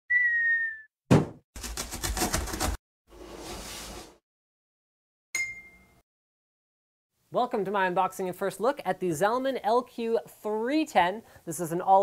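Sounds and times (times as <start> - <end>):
cartoon whistle: 0.1 - 0.9
thump: 1.1 - 1.4
blade slicing cardboard: 1.1 - 2.8.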